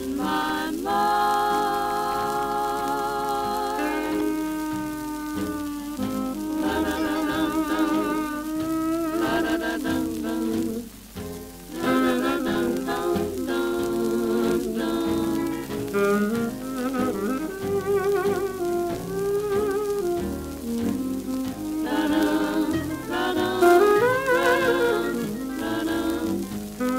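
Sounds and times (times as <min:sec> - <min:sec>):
record surface crackle and hiss: 0:00.0 - 0:26.9
swing band with vibrato lead melody: 0:00.0 - 0:26.9.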